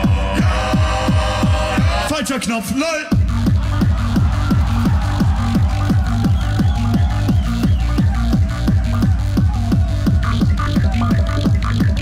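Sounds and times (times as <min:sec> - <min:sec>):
looped beatbox beat: 0:00.0 - 0:12.0.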